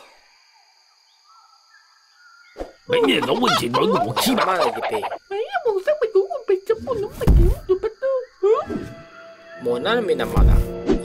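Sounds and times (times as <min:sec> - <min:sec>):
high-pitched night ambience: 0:00.0 - 0:11.0
cartoon characters jabbering: 0:02.9 - 0:07.9.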